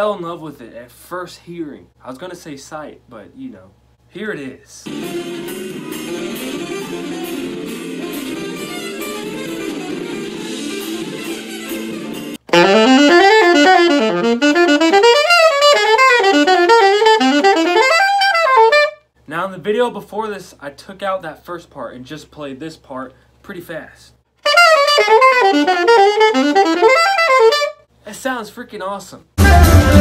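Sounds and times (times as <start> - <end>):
jazz band playing: 4.9 - 18.9, 24.4 - 27.7
saxophone solo: 4.9 - 19.0, 24.4 - 27.8.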